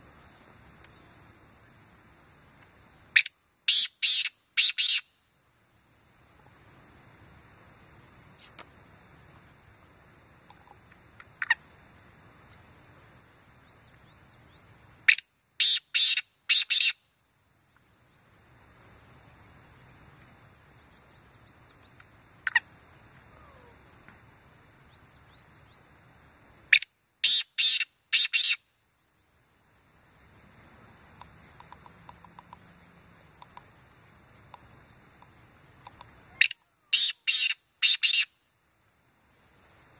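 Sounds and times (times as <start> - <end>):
bird calling sharp notes: 3.2 - 5.2, 15.1 - 17.0, 22.4 - 22.7, 26.7 - 28.6, 35.9 - 38.4.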